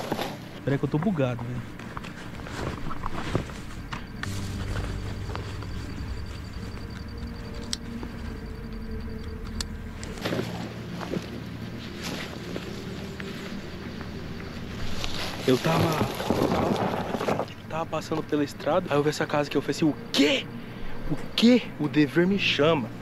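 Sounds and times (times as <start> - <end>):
steady low hum: 0.0 - 23.0
rustling in a backpack: 1.5 - 6.8, 10.1 - 17.6.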